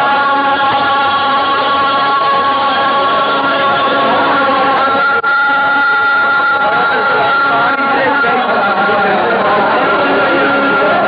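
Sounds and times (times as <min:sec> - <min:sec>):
harmonium: 0:00.0 - 0:11.0.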